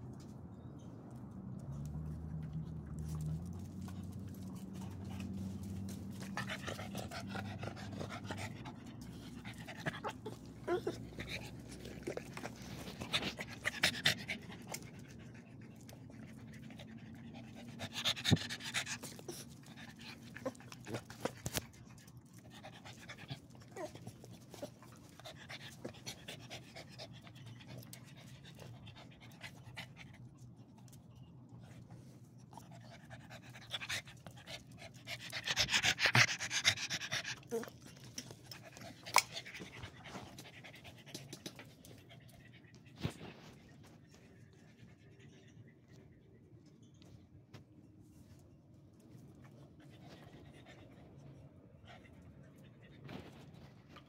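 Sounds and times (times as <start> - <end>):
dog panting: 2.7 - 30.3, 31.7 - 45.4.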